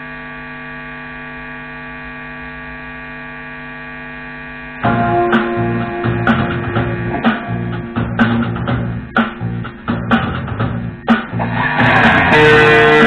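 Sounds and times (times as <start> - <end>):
amplifier mains hum: 0.0 - 13.0
loud electric guitar and drums: 4.8 - 13.0.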